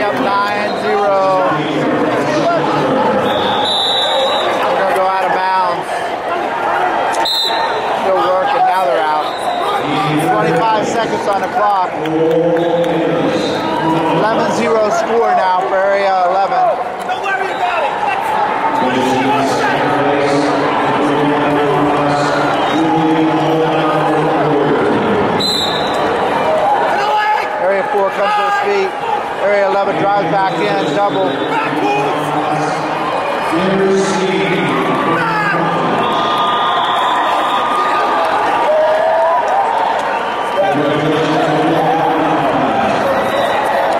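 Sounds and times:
men talking: 0.0s - 3.6s, 4.5s - 7.2s, 7.9s - 25.4s, 26.8s - 35.9s, 40.5s - 43.9s
crowd cheering and shouting: 0.0s - 43.9s.

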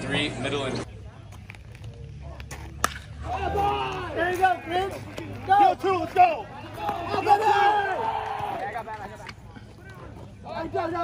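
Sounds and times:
open-air field ambience: 0.0s - 11.0s
bat cracking against ball: 2.4s - 3.2s.

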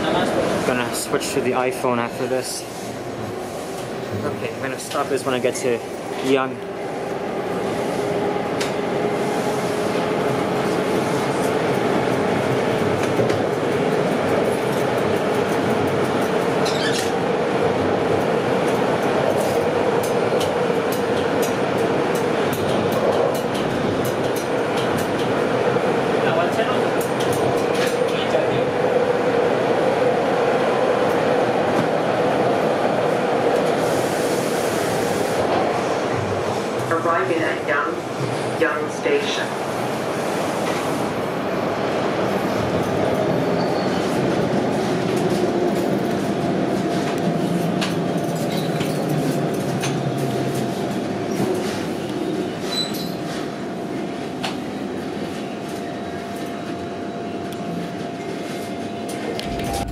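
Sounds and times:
subway train wheels rumbling: 0.0s - 59.9s
train whine: 2.1s - 48.9s, 56.3s - 59.9s.

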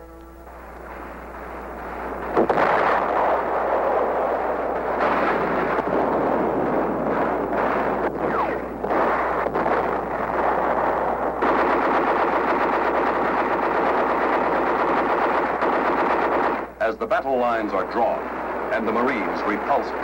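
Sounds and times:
explosions: 0.5s - 20.0s
gunfire: 0.5s - 20.0s.

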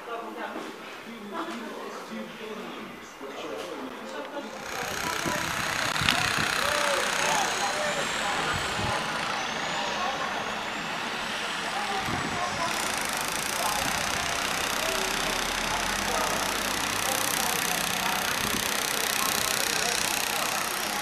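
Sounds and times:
people talking: 0.0s - 21.0s
traffic noise: 4.4s - 21.0s.

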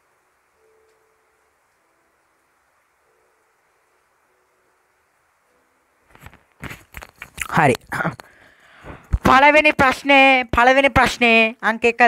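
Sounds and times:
faint steady tones: 0.0s - 6.6s.

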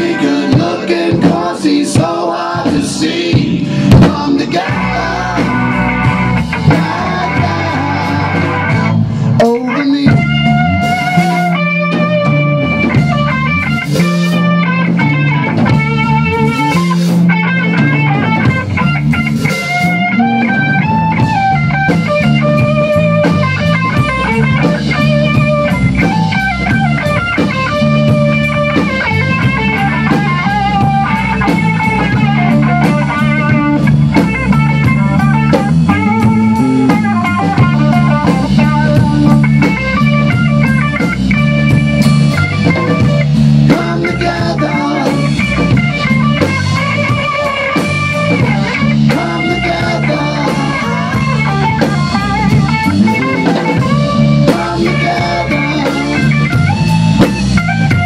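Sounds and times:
rock band playing: 0.0s - 58.0s.

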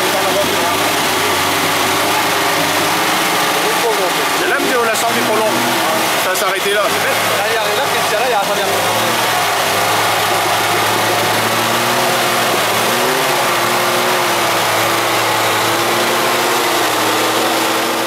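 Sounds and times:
engine running under load: 0.0s - 18.0s.

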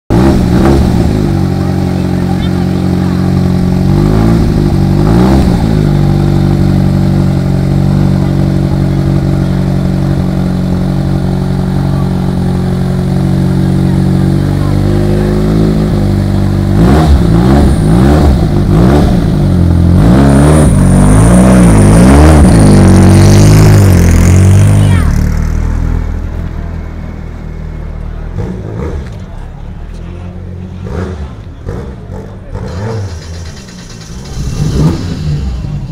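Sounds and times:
race car engine revving: 0.1s - 35.9s.

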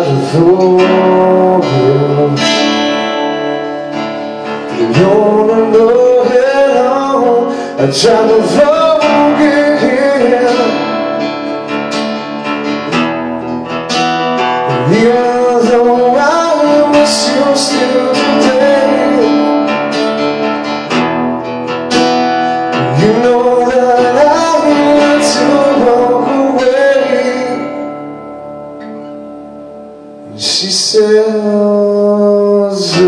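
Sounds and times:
man singing wordless notes: 0.0s - 11.8s, 14.4s - 20.5s, 22.4s - 28.6s, 30.2s - 33.0s
acoustic guitars strummed and picked: 0.0s - 33.0s.

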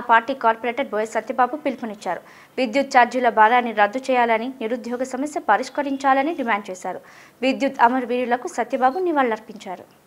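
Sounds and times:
woman reading aloud: 0.0s - 9.9s.

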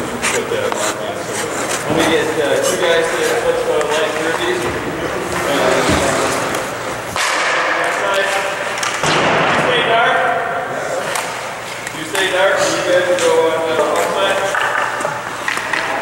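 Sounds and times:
men talking: 0.0s - 16.0s.

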